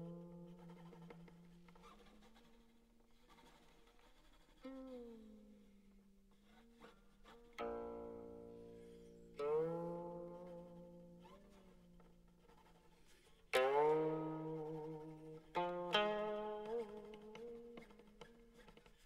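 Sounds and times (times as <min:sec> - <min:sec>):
plucked string notes: 0:07.6 - 0:12.8, 0:13.5 - 0:19.0.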